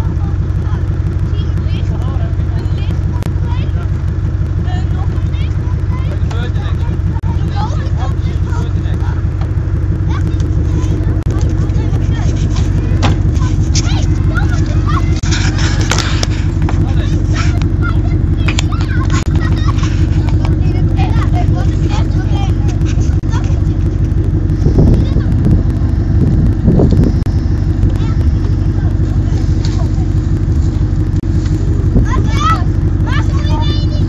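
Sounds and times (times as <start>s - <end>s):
people calling out: 0.0s - 26.6s, 27.4s - 34.0s
car engine running: 0.0s - 34.0s.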